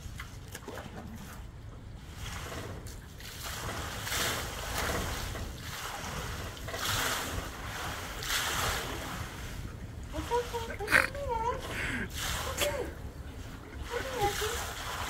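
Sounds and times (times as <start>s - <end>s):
water sloshing in metal tank: 0.0s - 15.0s
wind rumble on microphone: 0.0s - 15.0s.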